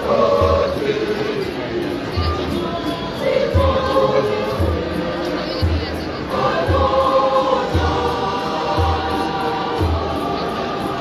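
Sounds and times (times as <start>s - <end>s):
choir singing in harmony: 0.0s - 11.0s
deep drum beat: 3.6s - 10.8s.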